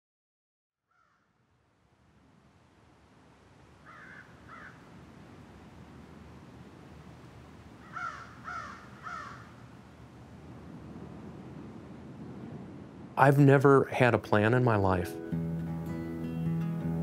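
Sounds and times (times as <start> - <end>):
crow cawing: 0.9 - 1.4, 3.8 - 4.9, 7.8 - 9.6
faint outdoor ambience: 0.9 - 17.0.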